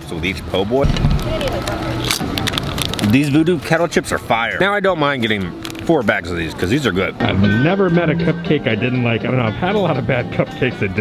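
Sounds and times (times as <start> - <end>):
crowd chatter: 0.3 - 11.0.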